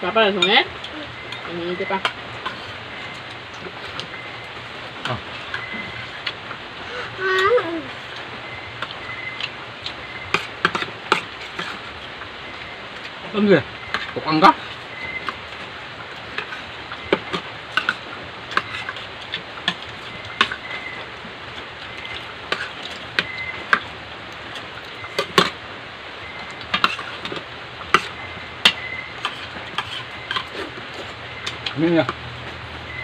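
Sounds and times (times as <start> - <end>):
cutlery clinking on plates: 10.3 - 11.8, 26.7 - 32.2.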